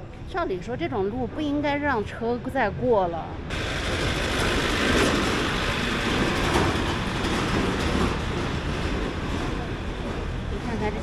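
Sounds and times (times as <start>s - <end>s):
truck engine rumble: 3.4s - 11.0s
tyres clattering on cobblestones: 3.5s - 11.0s.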